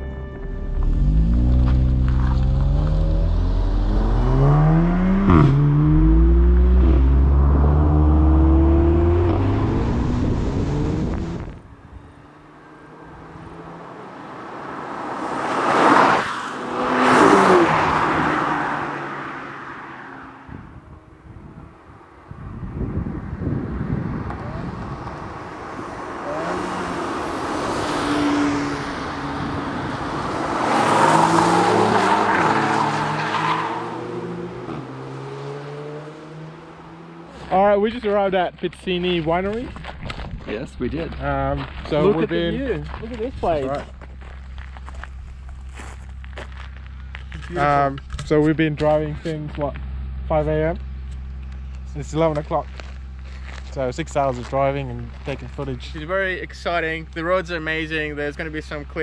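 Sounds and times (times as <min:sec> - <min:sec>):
cars passing at speed: 0:00.7 - 0:37.6
car engine revving through gears: 0:00.8 - 0:20.3, 0:24.2 - 0:37.5.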